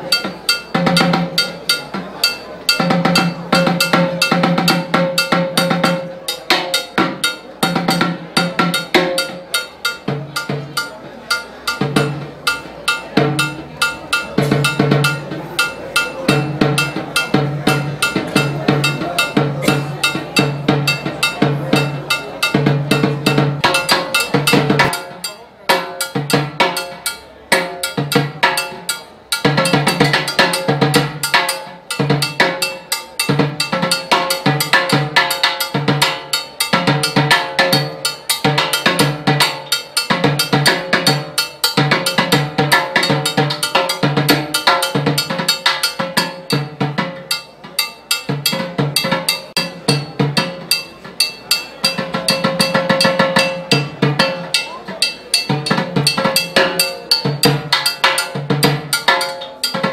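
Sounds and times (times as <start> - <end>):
block struck with sticks: 0.0 - 59.9
timbales played with sticks: 0.0 - 59.9.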